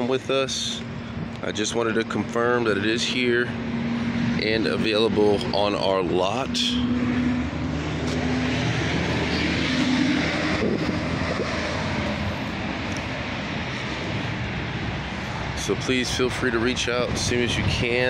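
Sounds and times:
engine drone: 0.0 - 18.0.

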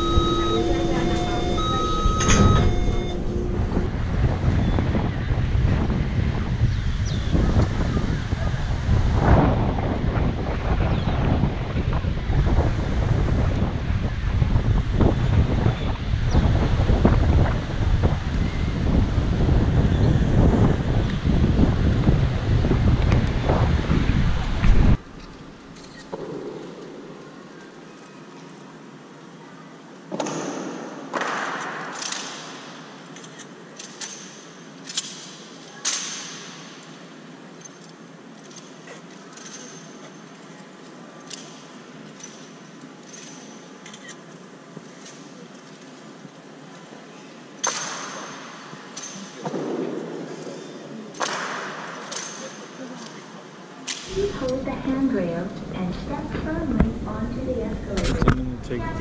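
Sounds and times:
wind buffeting microphone: 0.0 - 25.1, 54.1 - 59.0
sharp knocks echoing in hall: 30.1 - 33.0, 47.6 - 52.7.

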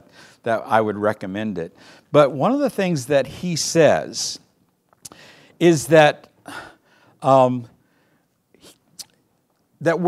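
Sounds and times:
man speaking: 0.4 - 4.5, 5.6 - 7.8, 9.8 - 10.0.

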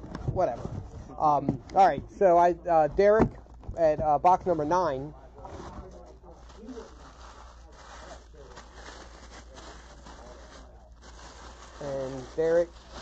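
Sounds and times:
packing paper rustling: 5.4 - 13.0.

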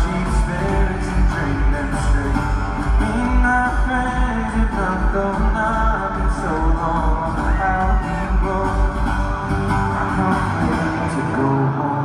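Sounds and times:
acoustic guitar: 0.0 - 12.0
person singing: 0.0 - 12.0.

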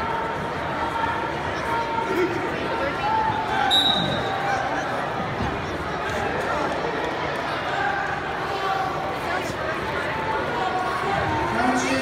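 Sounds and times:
spectators chattering: 0.0 - 12.0
referee's whistle blast: 3.7 - 4.3.

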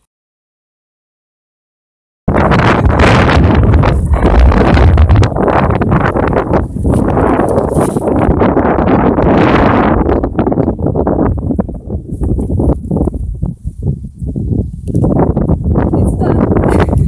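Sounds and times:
wind buffeting microphone: 2.3 - 17.0.

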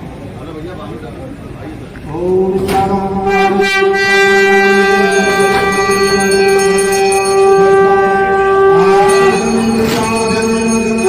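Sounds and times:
horn long steady note: 3.0 - 11.0.

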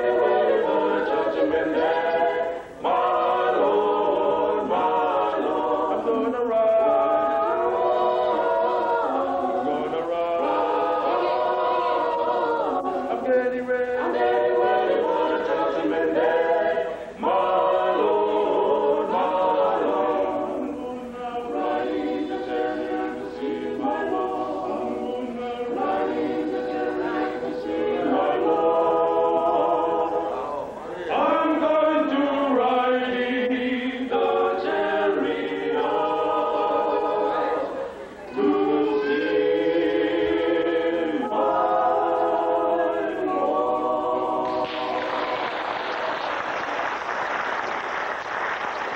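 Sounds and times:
male vocal quartet singing: 0.0 - 45.4.

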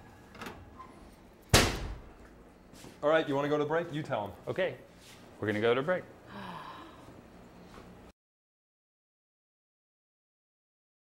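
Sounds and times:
oven door slamming: 1.5 - 2.1.

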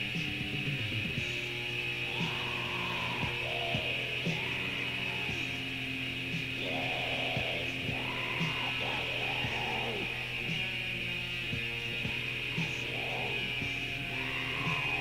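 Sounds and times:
distorted guitar: 0.0 - 15.0
low drone: 0.0 - 15.0.

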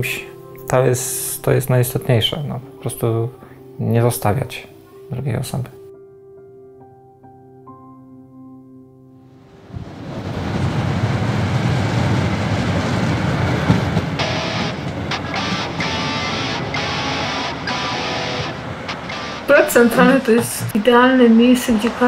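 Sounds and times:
soft guitar music: 0.0 - 9.4, 14.0 - 21.6
traffic rumble: 9.7 - 22.0.

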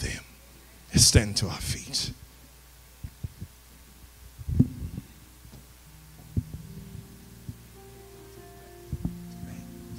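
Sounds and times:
sound system hum: 2.2 - 9.9
microphone handling thumps: 3.0 - 3.6, 4.4 - 7.7, 8.9 - 9.3.

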